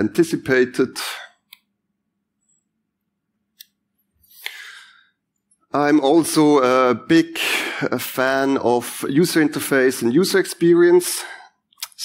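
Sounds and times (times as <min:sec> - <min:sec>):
breathy intake of breath: 0:04.4 - 0:05.2.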